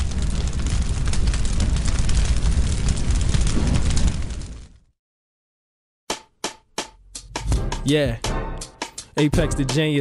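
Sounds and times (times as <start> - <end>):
rap backing beat: 6.1 - 10.0.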